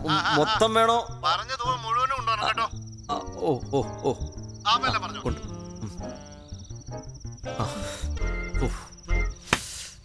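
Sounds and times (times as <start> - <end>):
soft background music: 0.0 - 9.6
high pulsing insect trill: 0.0 - 10.0.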